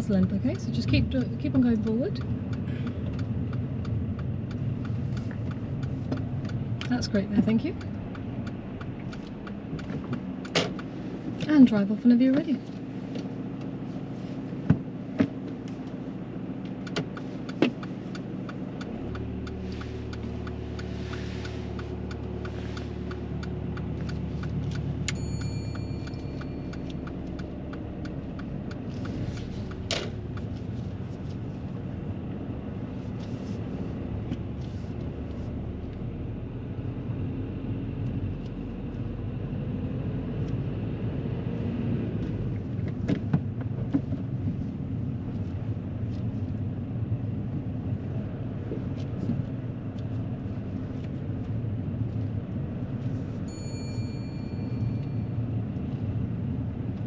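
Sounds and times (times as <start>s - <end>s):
car engine running: 0.0s - 57.0s
road hum: 0.0s - 57.0s.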